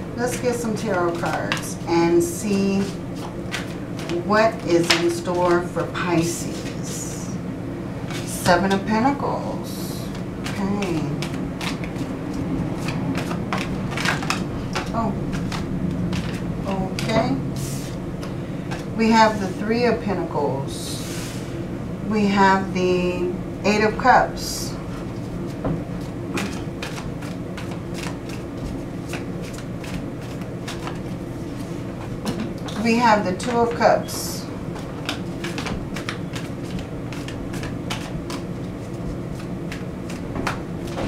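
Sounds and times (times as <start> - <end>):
steady low hum: 0.0 - 41.0
cards shuffled by hand: 10.0 - 16.4, 25.2 - 32.4, 34.7 - 41.0.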